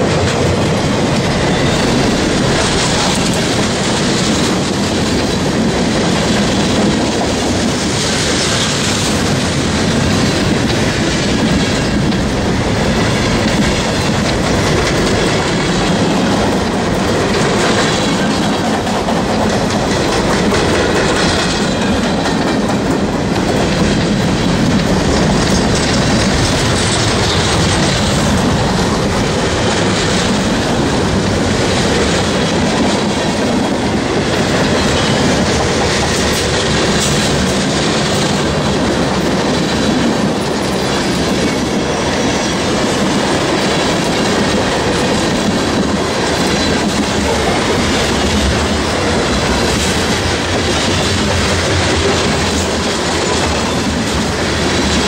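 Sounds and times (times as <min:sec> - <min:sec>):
freight train wheels rumbling on rails: 0:00.0 - 0:55.0.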